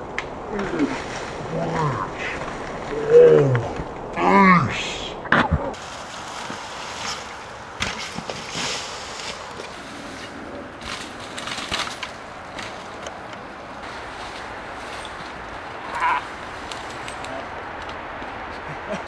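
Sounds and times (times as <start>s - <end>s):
bike tyres crunching leaves: 5.8s - 18.7s.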